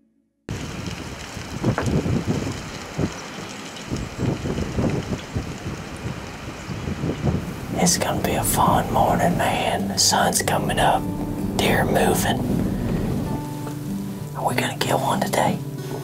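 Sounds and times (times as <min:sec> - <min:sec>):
wind buffeting microphone: 0:00.5 - 0:14.9.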